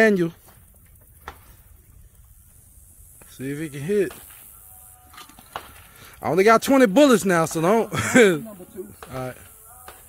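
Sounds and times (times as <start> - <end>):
low outdoor background: 0.0 - 10.0
man's voice: 6.2 - 10.0.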